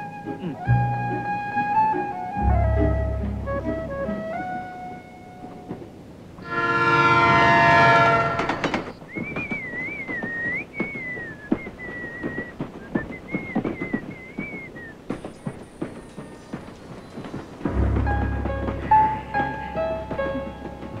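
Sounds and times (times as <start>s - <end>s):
railway carriage rattling: 0.0s - 21.0s
train horn: 6.4s - 8.9s
person whistling a tune: 9.1s - 14.9s.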